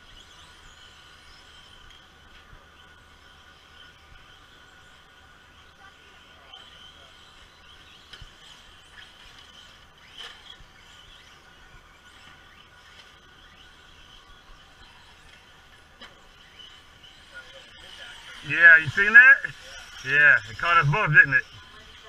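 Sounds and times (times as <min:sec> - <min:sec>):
toy car motor whine: 0:00.0 - 0:22.0.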